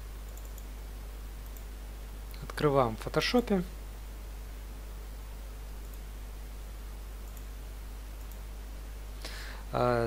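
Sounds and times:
steady low hum: 0.0 - 10.0
computer mouse clicks: 0.2 - 0.7, 1.4 - 1.7, 5.8 - 6.0, 7.2 - 7.5, 8.2 - 8.4.

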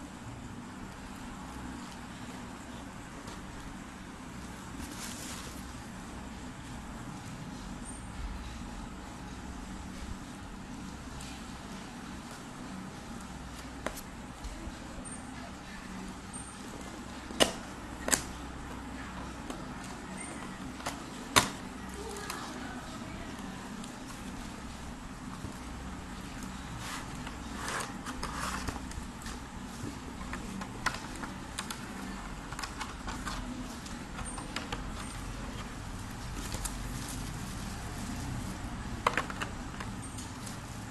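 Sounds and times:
low background hum: 0.0 - 40.9.

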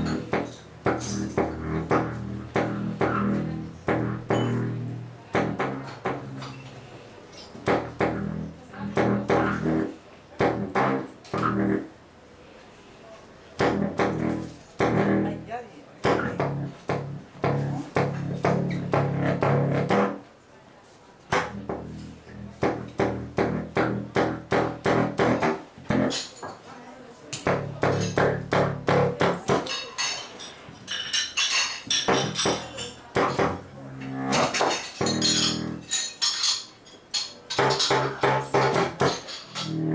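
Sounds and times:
low saxophone improvising: 0.0 - 6.8, 7.5 - 12.0, 13.6 - 15.5, 16.1 - 20.3, 21.3 - 26.2, 33.4 - 35.9, 39.6 - 39.9.

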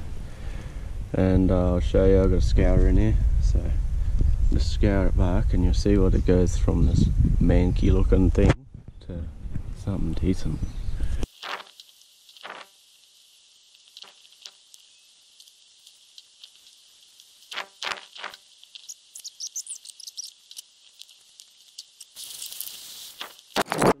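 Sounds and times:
steady high hiss: 9.1 - 23.6
birds chirping: 10.0 - 11.2, 14.0 - 20.6
scourer scraping bone: 11.3 - 12.7, 17.5 - 18.9.

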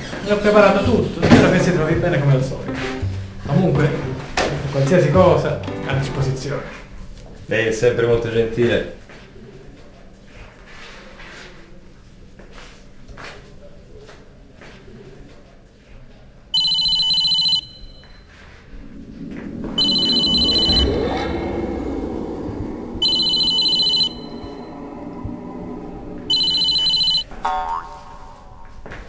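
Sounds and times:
phone electronic ringtone: 16.6 - 18.2, 19.8 - 21.0, 23.0 - 24.5, 26.3 - 27.3.

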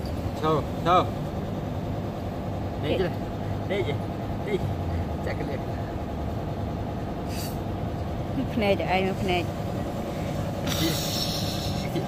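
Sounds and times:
low engine rumble: 0.0 - 12.0
short hiss: 7.3 - 7.6.

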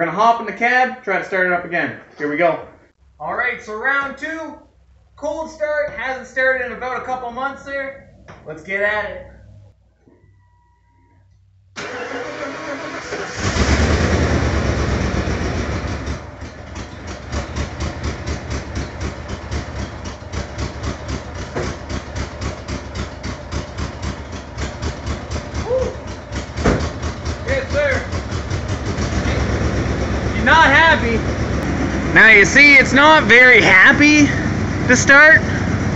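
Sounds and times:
starter motor cranking: 11.8 - 14.0
engine starting and rough idling: 11.8 - 35.9.

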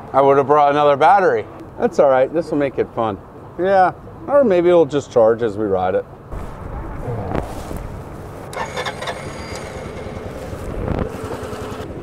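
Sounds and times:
low engine rumble: 5.6 - 12.0.

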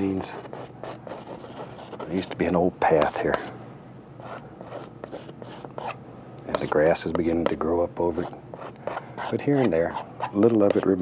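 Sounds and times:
palette knife scraping canvas: 4.2 - 6.0, 8.1 - 11.0.

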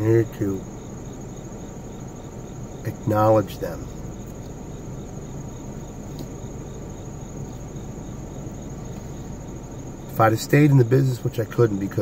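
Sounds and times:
crickets trilling: 0.0 - 12.0
low steady background noise: 0.0 - 12.0
faint click: 6.1 - 6.4.

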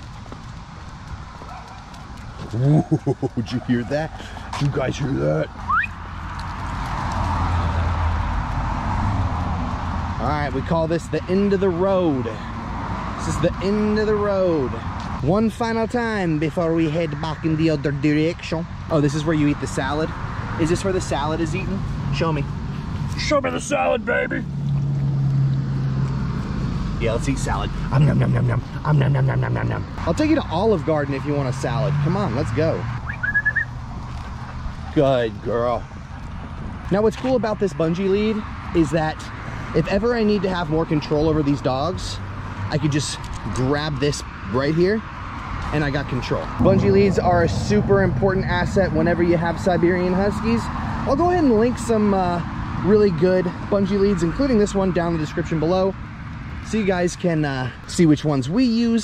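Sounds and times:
person whistling: 5.7 - 5.9, 33.1 - 33.7
car driving by: 44.8 - 51.2.

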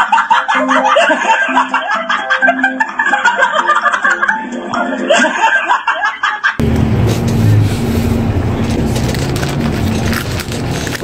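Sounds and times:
music: 0.0 - 5.8
bus engine and road rumble: 6.6 - 11.0.

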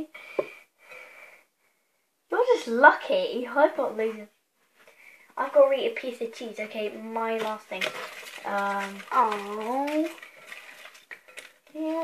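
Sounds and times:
girl breathing faintly: 0.0 - 2.2, 4.8 - 5.4.

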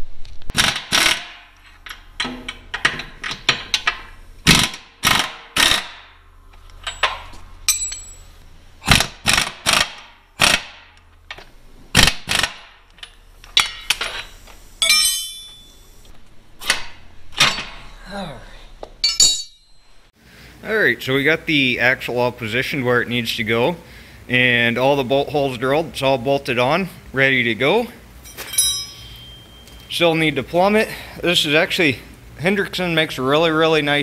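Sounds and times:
low steady hum: 0.0 - 34.0
wrenches clanking on steel bolts: 0.5 - 6.0, 6.7 - 8.3, 12.3 - 15.8, 19.0 - 19.8, 28.2 - 29.8
pneumatic impact wrench rattling: 0.5 - 18.0.

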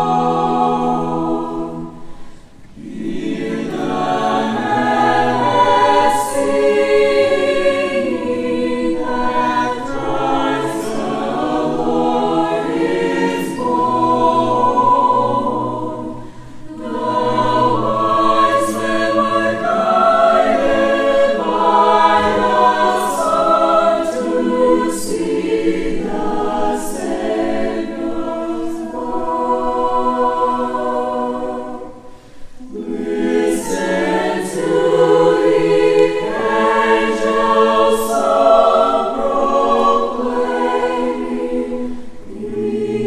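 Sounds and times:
choir singing in harmony: 0.0 - 43.0.

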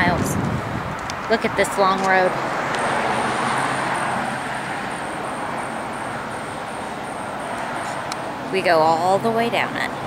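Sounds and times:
car tyres on road: 0.0 - 10.0.

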